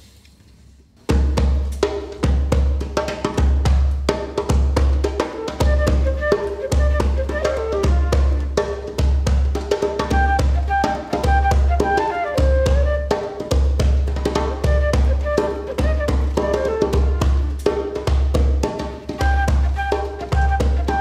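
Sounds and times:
djembe hand drumming: 1.1s - 21.0s
flute melody: 5.2s - 9.0s, 10.0s - 13.6s, 14.4s - 17.8s, 19.1s - 21.0s.

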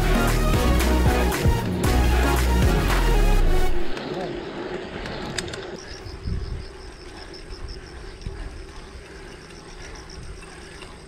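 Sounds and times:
wind rumble: 3.5s - 11.0s
bike tyre noise on road: 3.6s - 11.0s.

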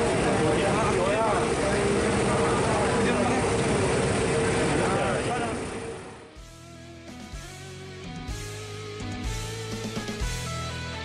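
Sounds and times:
boat engine: 0.0s - 6.6s
guitar music: 6.3s - 11.0s.

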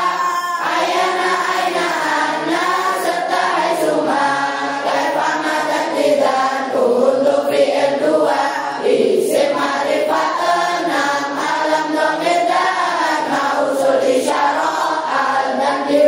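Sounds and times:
children chanting in unison: 0.0s - 16.0s.

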